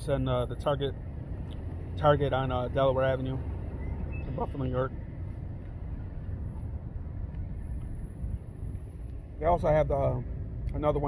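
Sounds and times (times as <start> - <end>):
distant traffic: 0.0 - 11.0.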